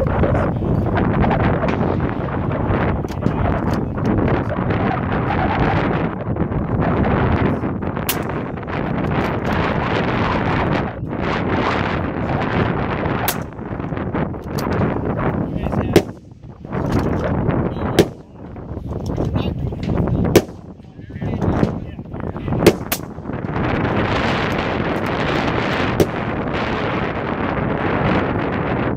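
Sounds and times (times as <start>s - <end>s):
wind buffeting microphone: 0.0s - 28.9s.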